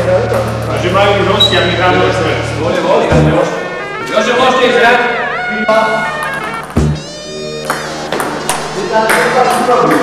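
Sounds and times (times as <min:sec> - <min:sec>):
background music: 0:02.1 - 0:10.0.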